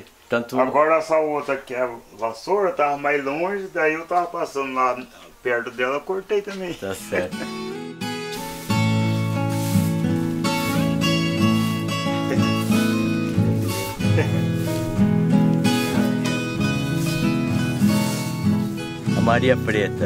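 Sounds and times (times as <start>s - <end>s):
acoustic guitar music: 5.8s - 20.0s.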